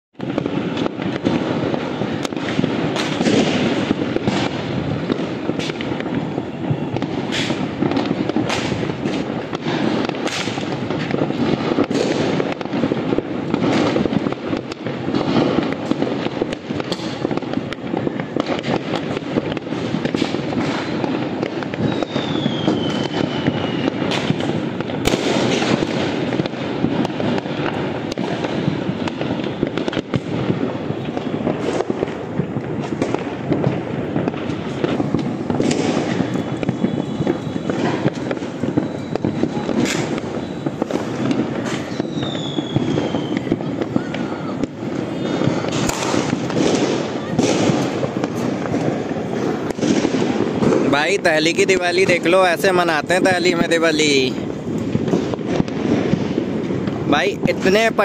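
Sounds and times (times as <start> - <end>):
falling firework whistle: 0.2 - 12.8, 13.6 - 58.0
firecrackers and fireworks crackling: 0.2 - 58.0.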